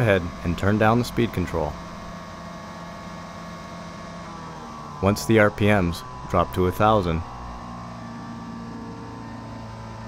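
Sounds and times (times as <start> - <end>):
cleaning machine engine hum: 0.0 - 10.0.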